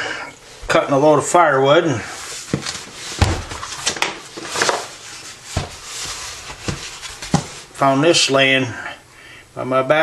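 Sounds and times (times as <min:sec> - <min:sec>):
cardboard rustling: 0:02.2 - 0:08.0
cardboard box knocks and bumps: 0:02.5 - 0:04.0, 0:05.5 - 0:07.7.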